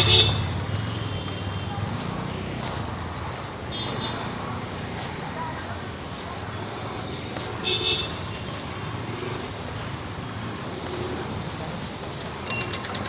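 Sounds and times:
busy street traffic: 0:00.0 - 0:13.0.

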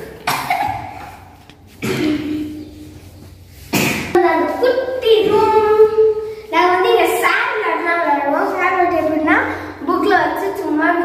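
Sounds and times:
child coughing: 0:00.0 - 0:02.7, 0:03.7 - 0:04.2.

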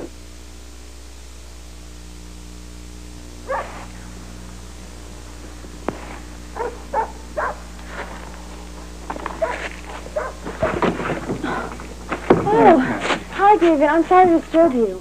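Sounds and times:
steady low hum: 0:00.0 - 0:15.0
dog barking: 0:03.5 - 0:03.9, 0:06.6 - 0:07.7, 0:09.4 - 0:10.7.

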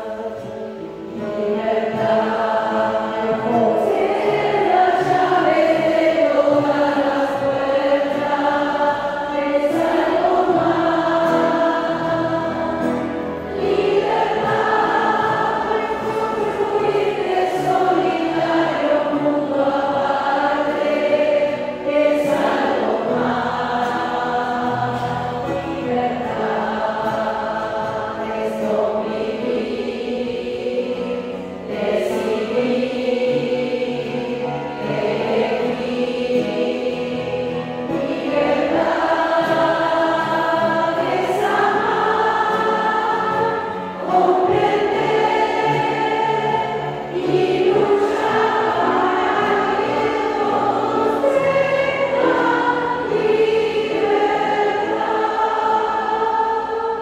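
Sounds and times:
musical accompaniment: 0:00.0 - 0:57.0
women singing a hymn: 0:00.0 - 0:57.0.

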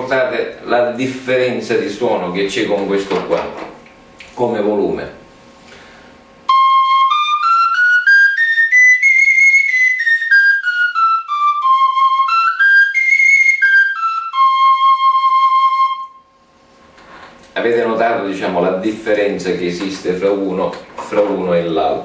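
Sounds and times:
duct flute playing a scale: 0:06.5 - 0:16.3.

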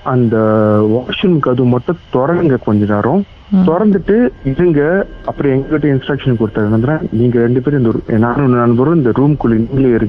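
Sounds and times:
person talking: 0:00.1 - 0:10.0.

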